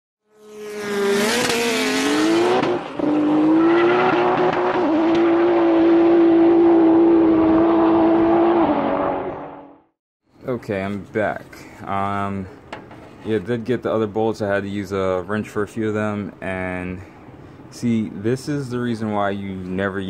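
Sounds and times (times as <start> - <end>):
car engine revving: 0.3 - 9.9.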